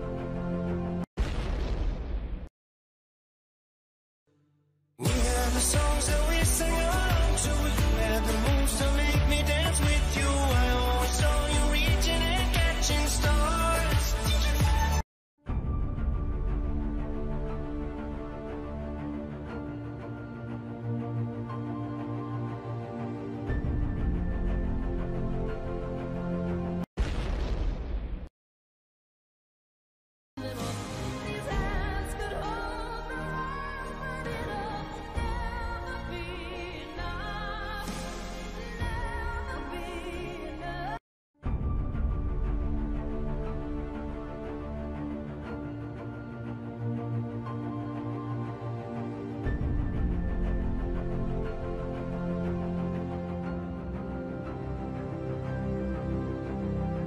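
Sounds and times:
explosion-like boom effect: 1.2s - 2.5s, 27.0s - 28.3s.

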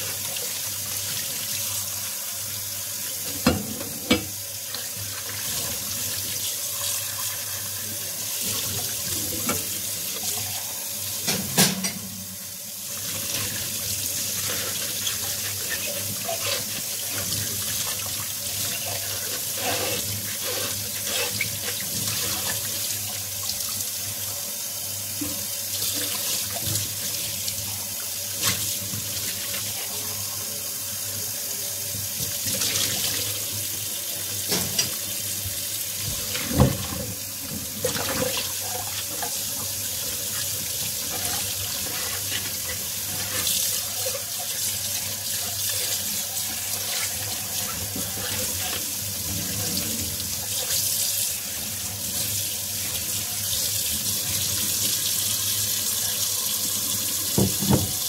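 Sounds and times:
tap water running into sink: 0.0s - 30.6s, 31.8s - 58.0s
dishes knocking: 57.4s - 58.0s.

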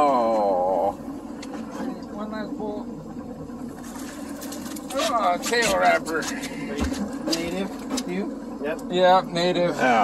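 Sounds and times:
outboard motor droning: 0.0s - 10.0s.

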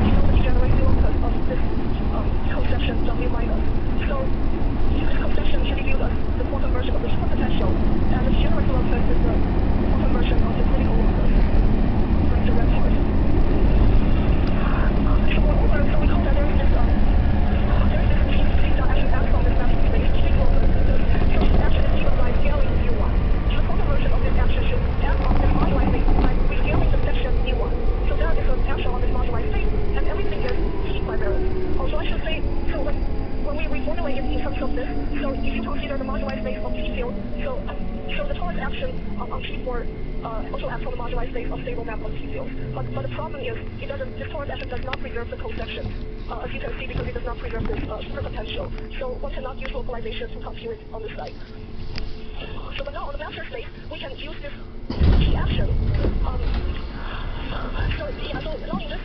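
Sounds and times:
electric train rumble: 0.0s - 59.0s.

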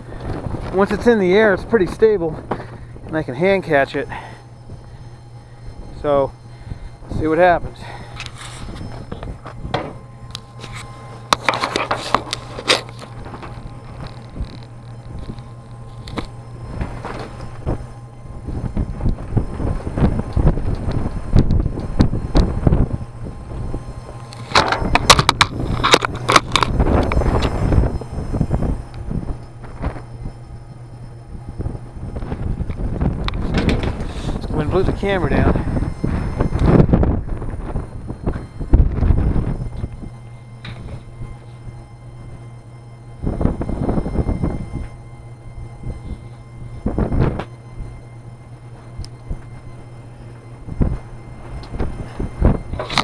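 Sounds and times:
gusty wind buffeting microphone: 0.0s - 53.0s
steady low hum: 0.0s - 53.0s
crackles and knocks: 0.1s - 7.4s, 8.0s - 53.0s.

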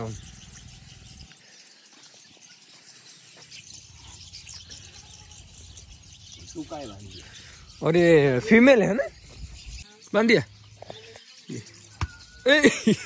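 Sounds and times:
high-pitched chirping: 0.0s - 12.9s.

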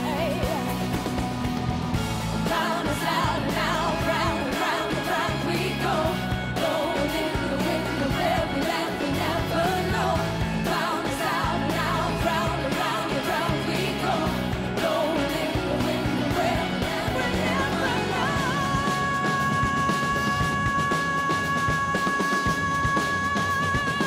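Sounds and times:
bass line: 0.0s - 24.0s
drums: 0.0s - 24.0s
woman singing: 2.5s - 24.0s.

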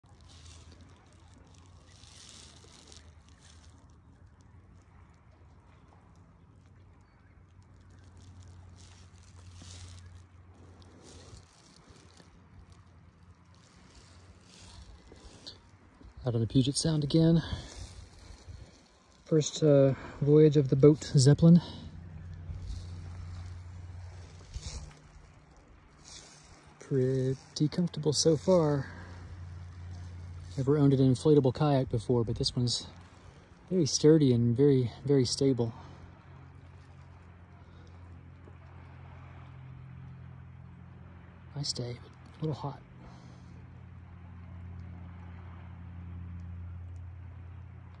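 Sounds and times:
paddle splashing water: 0.0s - 16.2s, 19.9s - 31.2s, 32.8s - 33.7s, 35.7s - 41.5s
distant boat engine humming: 0.0s - 48.0s
low steady rumble: 0.0s - 48.0s.

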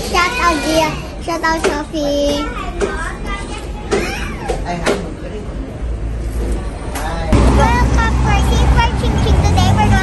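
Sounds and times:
people's voices: 0.0s - 10.0s
traffic rumble: 0.0s - 10.0s.

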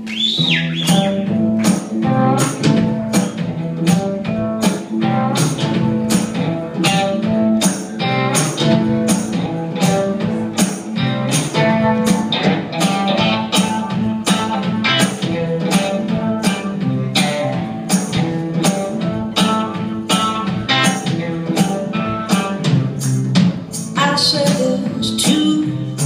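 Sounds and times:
electric guitar: 0.0s - 26.0s
steady drumbeat: 0.0s - 26.0s.

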